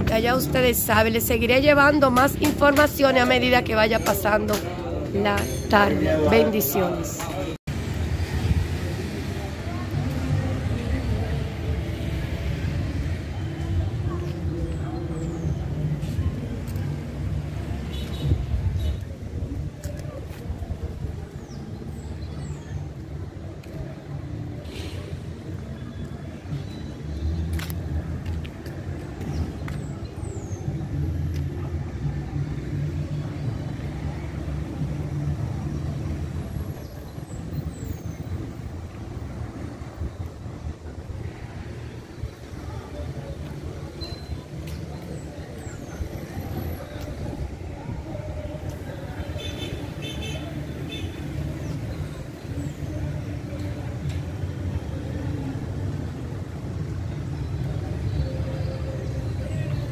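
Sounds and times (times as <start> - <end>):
low rumble of traffic: 0.0 - 59.9
faint distant voices: 8.2 - 59.9.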